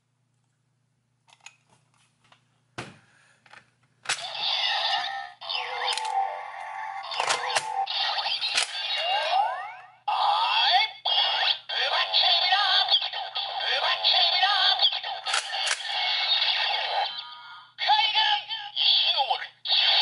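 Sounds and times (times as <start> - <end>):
toy belt sound effects and music: 4.2 - 17.4
synthesized voice: 4.3 - 15.2, 16.7 - 20.0.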